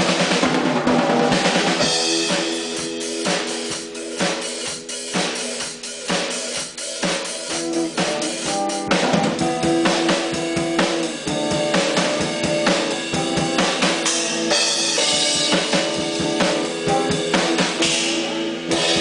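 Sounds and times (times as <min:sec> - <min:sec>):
drum kit playing rock beat: 0:00.0 - 0:19.0
electric guitar chords: 0:00.0 - 0:19.0.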